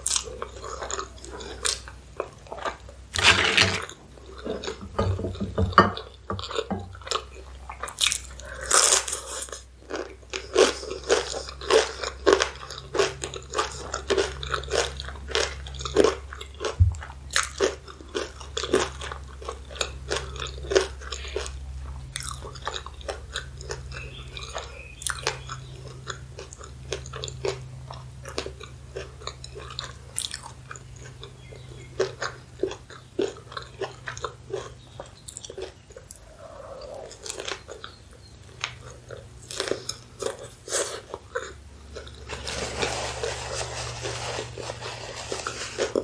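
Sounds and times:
chewing hot dog: 0.0 - 5.1, 6.0 - 42.8, 44.0 - 46.0
crunching tortilla chip: 2.6 - 4.0, 37.1 - 46.0.

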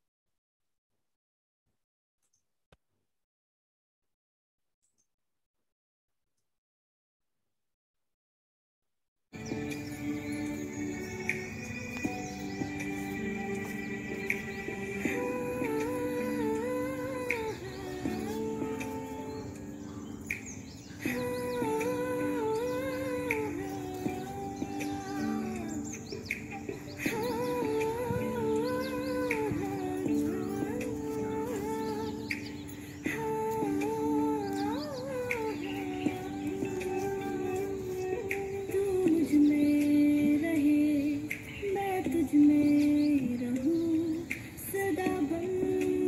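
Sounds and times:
held notes of devotional song: 9.4 - 46.0
person singing melody: 9.4 - 46.0.

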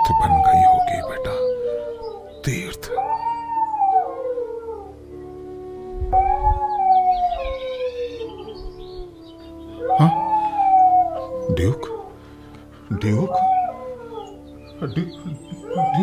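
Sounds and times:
dog howling: 0.0 - 12.3, 12.9 - 14.6, 15.4 - 16.0
background music: 0.0 - 16.0.

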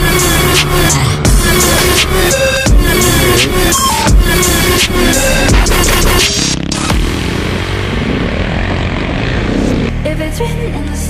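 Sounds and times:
motorcycle engine running: 0.0 - 10.2
music: 0.0 - 11.0.

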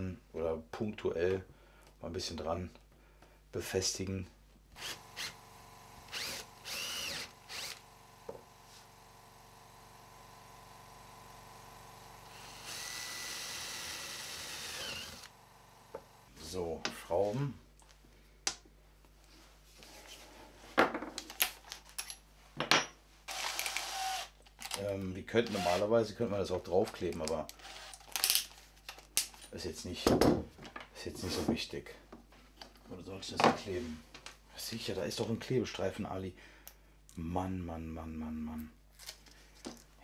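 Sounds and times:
drill boring through board: 4.8 - 16.3, 23.3 - 24.8, 25.4 - 25.9, 27.5 - 28.2
knocks and handling noises: 17.8 - 23.0, 28.0 - 34.4.

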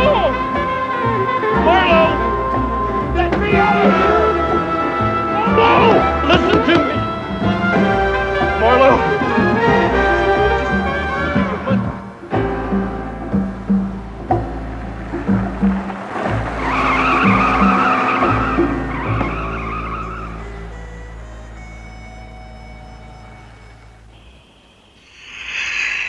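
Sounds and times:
tyres squealing: 0.0 - 12.2, 15.0 - 26.0
dramatic music score: 0.0 - 24.2.

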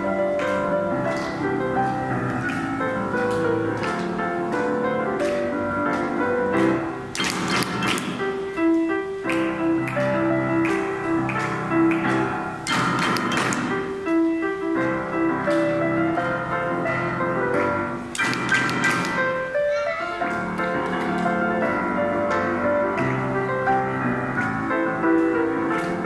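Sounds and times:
grand piano playing chords: 0.0 - 26.0.

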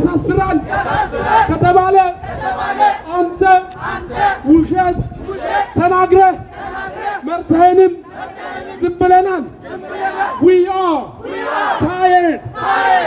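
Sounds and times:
man shouting through loudspeaker: 0.0 - 2.2, 3.0 - 3.7, 4.4 - 6.5, 7.2 - 8.1, 8.7 - 9.5, 10.2 - 12.5
crowd chanting slogans: 0.0 - 13.0.

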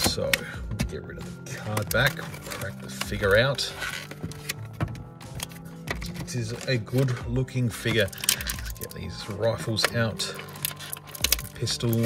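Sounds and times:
background music: 0.0 - 12.0
plastic packaging crackling: 5.4 - 9.2, 9.8 - 12.0.

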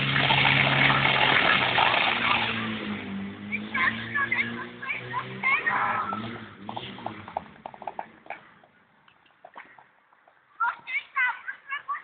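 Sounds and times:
water rushing from fire hoses: 0.0 - 2.9
engine hum: 0.0 - 10.8.

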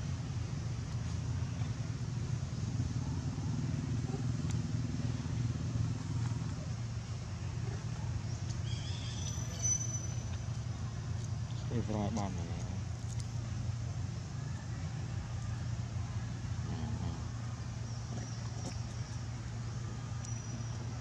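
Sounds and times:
low engine rumble: 0.0 - 21.0.

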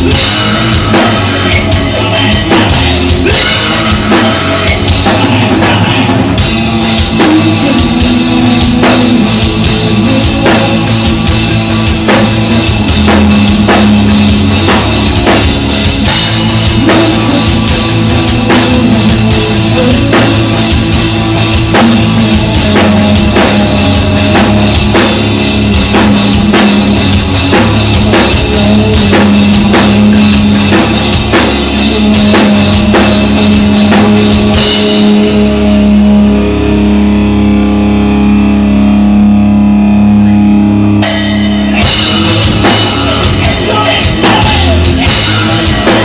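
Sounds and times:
drum kit: 0.0 - 46.0
electric guitar: 0.0 - 46.0.

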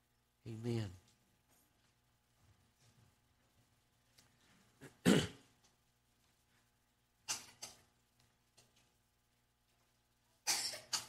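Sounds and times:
man clearing his throat: 4.8 - 5.5.

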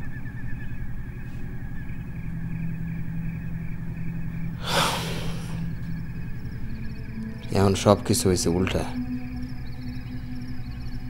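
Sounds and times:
steady low hum: 0.0 - 11.0
man breathing heavily while crying: 4.6 - 5.7.

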